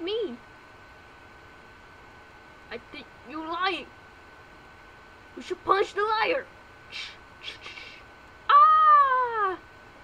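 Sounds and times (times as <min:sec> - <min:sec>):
high-pitched cry: 0:06.9 - 0:09.6.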